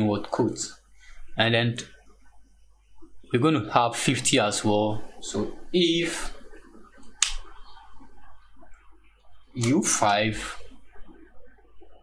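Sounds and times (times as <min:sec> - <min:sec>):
faint low background noise: 0:00.0 - 0:12.0.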